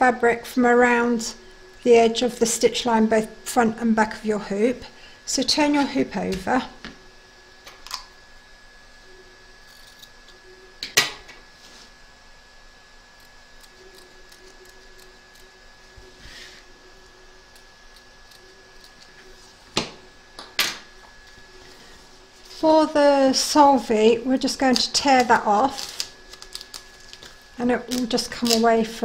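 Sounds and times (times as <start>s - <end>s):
faint steady hum: 0.0s - 29.0s.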